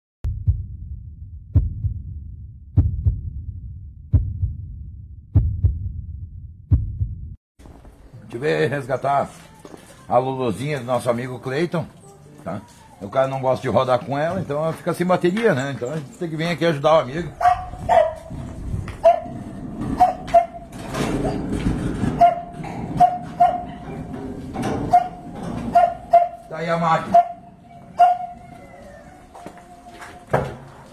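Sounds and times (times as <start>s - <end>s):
heartbeat thumps: 0.2s - 7.4s, 17.4s - 19.2s
low rumble: 0.2s - 7.4s
small dog barking: 17.4s - 18.3s, 19.0s - 19.4s, 20.0s - 20.6s, 22.2s - 23.8s, 24.9s - 26.5s, 27.1s - 28.4s.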